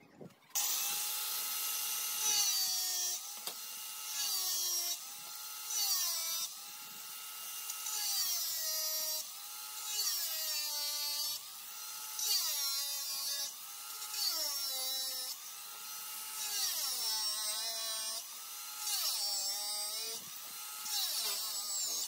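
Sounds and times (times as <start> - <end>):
angle grinder cutting plastic: 0.1 - 22.0.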